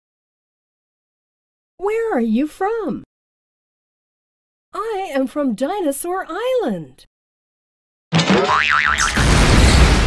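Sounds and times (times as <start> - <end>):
cartoon springy boing: 8.2 - 9.2.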